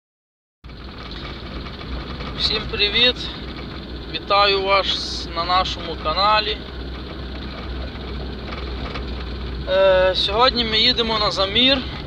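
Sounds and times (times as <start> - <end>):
road noise: 0.6 - 12.0
vehicle engine drone: 0.6 - 12.0.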